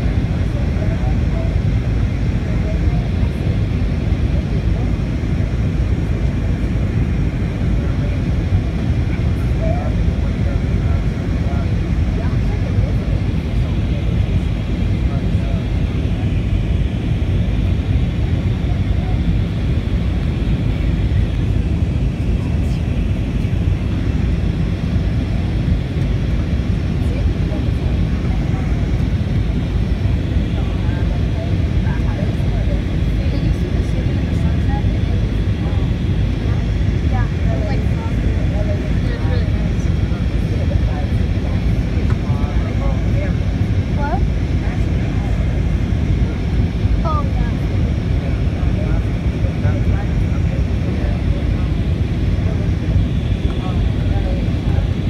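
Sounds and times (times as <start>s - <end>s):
airliner cabin noise: 0.0s - 55.0s.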